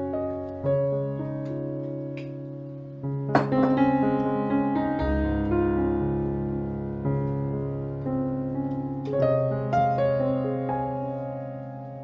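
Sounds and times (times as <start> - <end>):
relaxing instrumental music: 0.0 - 12.0.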